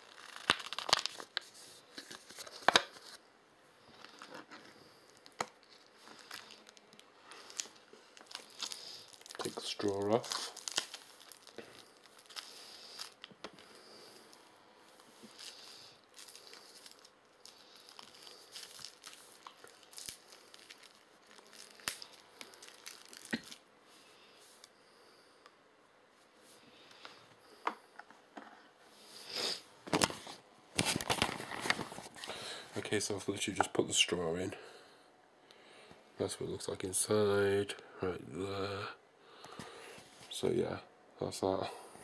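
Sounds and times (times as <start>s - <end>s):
straw wrapper crinkling and tearing: 0.0s - 3.2s, 4.0s - 13.4s, 14.9s - 23.7s, 30.8s - 32.4s.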